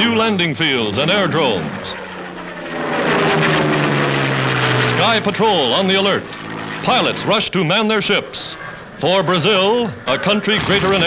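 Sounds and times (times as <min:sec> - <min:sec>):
propeller aircraft engine drone: 0:00.0 - 0:11.0.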